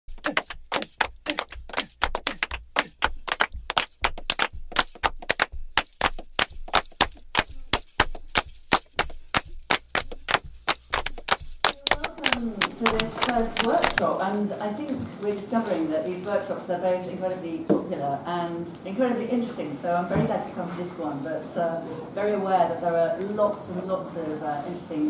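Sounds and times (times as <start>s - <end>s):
fast sharp drum strikes: 0.1s - 14.0s.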